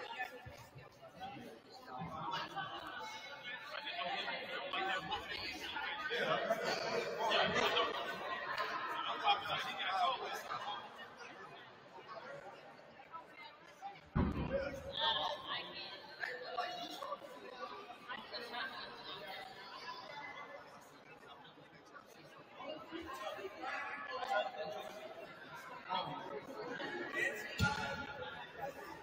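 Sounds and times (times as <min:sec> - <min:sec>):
people chattering: 0:00.0 - 0:29.0
low thump: 0:14.2 - 0:14.8.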